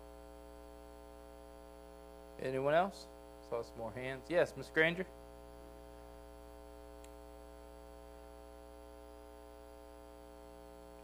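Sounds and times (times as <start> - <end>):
electrical mains hum: 0.0 - 11.0
faint tick: 7.0 - 7.2.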